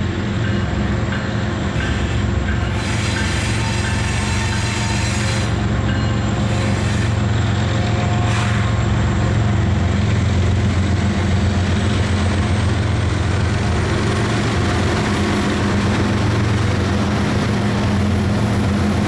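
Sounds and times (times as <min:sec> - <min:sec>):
diesel locomotive engine drone: 0:00.0 - 0:19.0
wheels rumbling on rail: 0:00.0 - 0:19.0.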